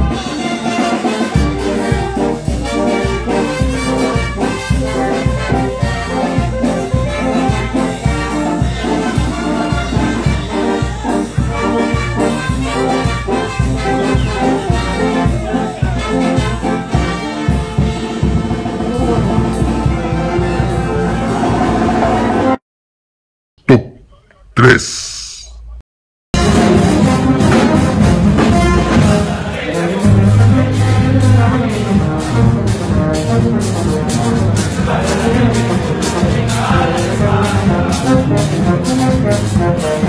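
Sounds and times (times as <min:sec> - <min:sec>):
brass band playing: 0:00.0 - 0:22.6, 0:26.4 - 0:40.0.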